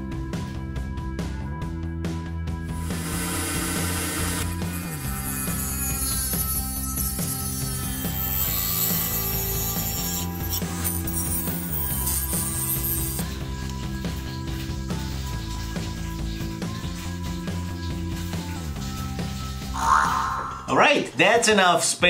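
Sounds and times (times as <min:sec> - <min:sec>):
background music: 0:00.0 - 0:22.0
rotary tool grinding plastic: 0:02.8 - 0:13.4.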